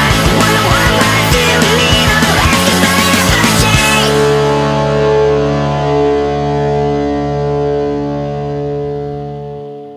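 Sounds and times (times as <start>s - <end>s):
distorted electric guitar chord ringing: 0.0s - 9.9s.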